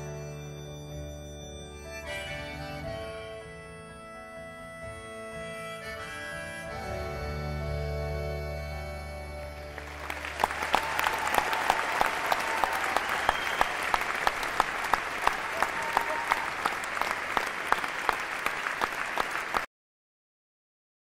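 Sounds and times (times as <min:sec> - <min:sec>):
audience applauding and cheering: 0:09.3 - 0:19.7.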